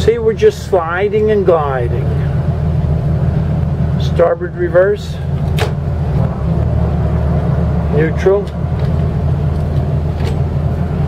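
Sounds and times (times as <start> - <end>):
boat engines idling: 0.0 - 11.0.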